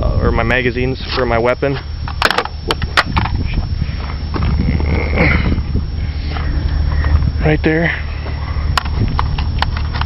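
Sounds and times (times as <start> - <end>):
low rumble: 1.8 - 10.0.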